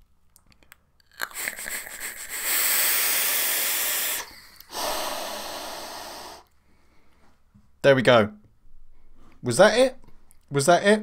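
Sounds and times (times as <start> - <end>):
forceful exhale: 2.3 - 6.5.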